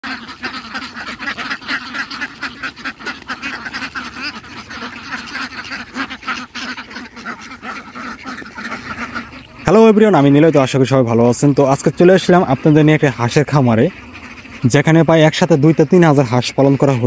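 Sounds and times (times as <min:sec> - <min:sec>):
ducks quacking: 0:00.0 - 0:17.0.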